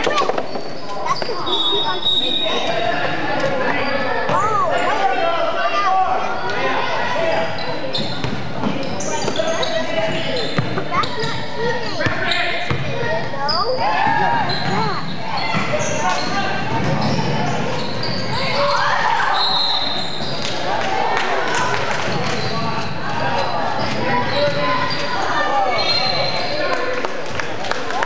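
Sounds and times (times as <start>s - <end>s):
sneakers squeaking on hardwood: 0.0s - 4.6s, 7.4s - 20.5s, 22.1s - 26.6s
voices chattering and calling out: 0.0s - 28.0s
basketball bouncing: 12.0s - 13.1s.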